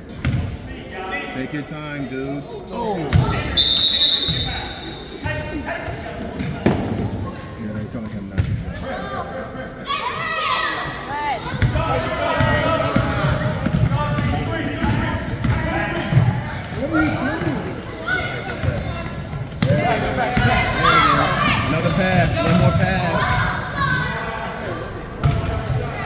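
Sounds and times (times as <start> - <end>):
whistle blowing: 3.5 - 5.2
voices shouting: 8.7 - 26.0.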